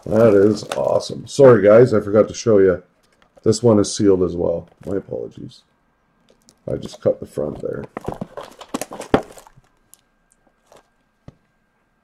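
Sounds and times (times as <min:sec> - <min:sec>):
plastic shrink-wrap crinkling: 0:00.0 - 0:01.4, 0:07.6 - 0:11.0.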